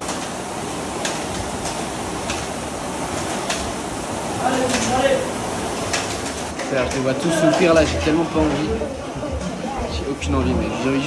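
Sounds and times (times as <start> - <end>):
rowing machine fan whoosh: 0.0 - 11.0.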